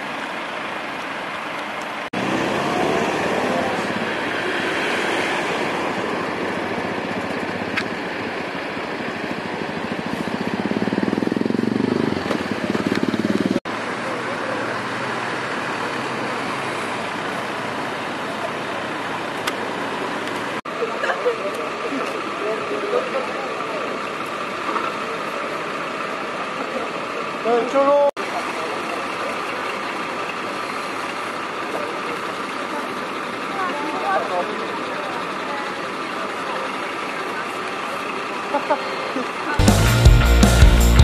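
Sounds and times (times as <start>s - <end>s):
road traffic: 0.0s - 41.0s
car driving past close by: 2.2s - 6.4s.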